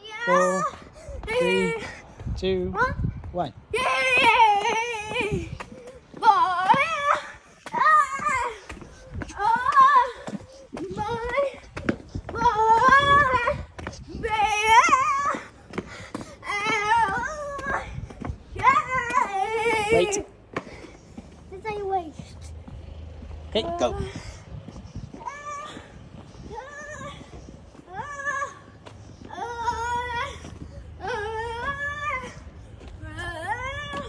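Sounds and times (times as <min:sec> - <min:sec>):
child making high wavering calls: 0:25.1 - 0:34.0.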